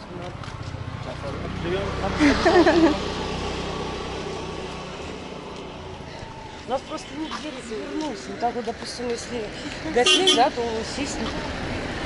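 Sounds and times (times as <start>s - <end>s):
street noise: 0.0s - 12.0s.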